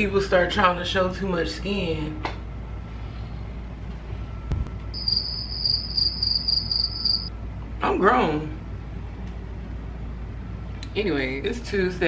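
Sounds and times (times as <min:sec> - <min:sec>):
low steady hum: 0:00.0 - 0:12.0
cricket chirping: 0:05.0 - 0:07.3.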